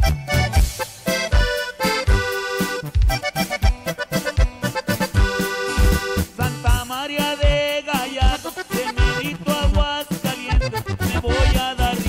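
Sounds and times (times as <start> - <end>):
accordion music: 0.0 - 12.0
steady bass beat: 0.0 - 12.0.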